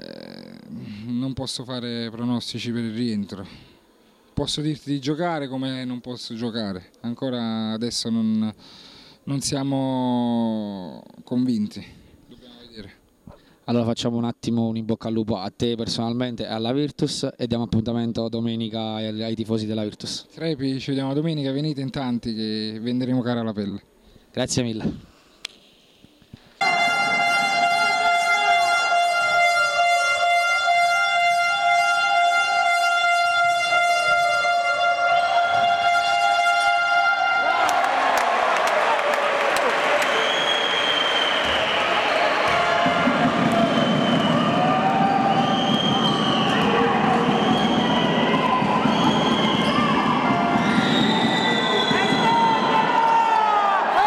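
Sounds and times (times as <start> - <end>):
long steady horn blast: 26.6 - 37.8
crowd noise: 26.6 - 54.0
basketball bouncing: 42.3 - 45.0.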